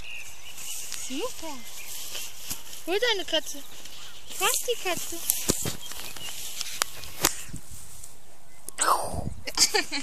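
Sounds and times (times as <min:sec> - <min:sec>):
long grass rustling: 0:00.0 - 0:08.4.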